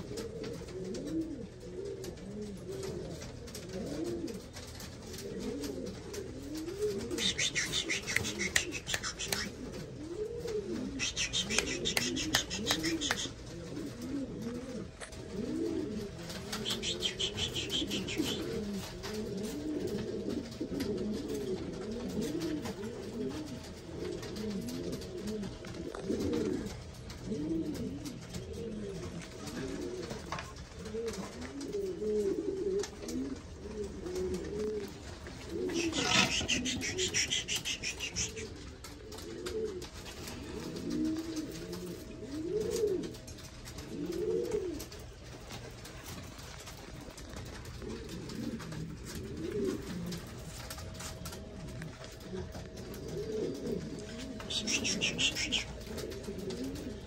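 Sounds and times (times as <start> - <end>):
pigeon cooing: 0.0 - 57.0.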